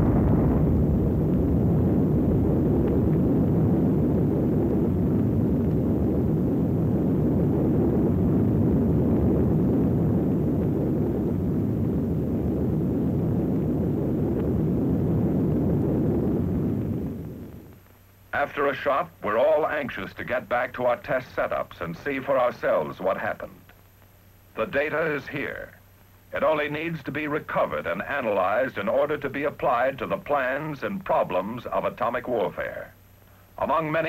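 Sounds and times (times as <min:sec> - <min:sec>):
deep explosion rumble: 0:00.0 - 0:17.8.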